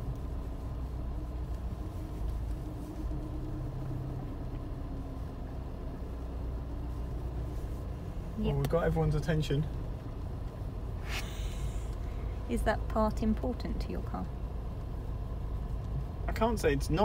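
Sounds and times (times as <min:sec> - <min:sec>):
car engine rumble inside cabin: 0:00.0 - 0:17.0.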